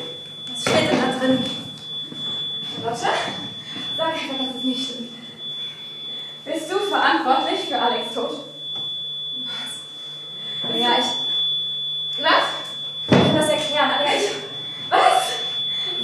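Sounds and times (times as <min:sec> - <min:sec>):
steady high-pitched whine: 0:00.0 - 0:16.0
girls speaking: 0:10.7 - 0:11.2, 0:13.4 - 0:15.3.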